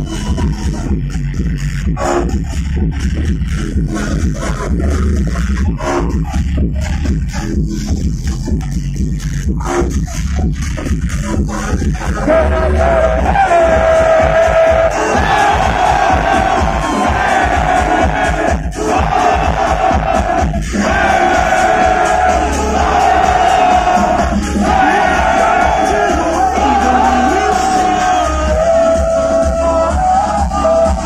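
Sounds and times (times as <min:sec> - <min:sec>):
electronic dance music: 0:00.0 - 0:31.0
crowd cheering: 0:12.3 - 0:29.4.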